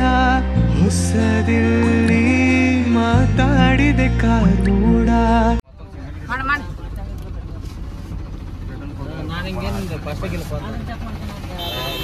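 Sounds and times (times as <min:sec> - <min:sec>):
vehicle engine rumble: 0:00.0 - 0:12.0
road noise: 0:04.1 - 0:12.0.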